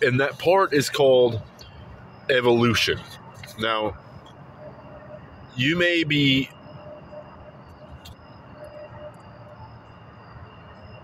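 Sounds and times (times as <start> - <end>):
low background rumble and hiss: 0.0 - 11.0.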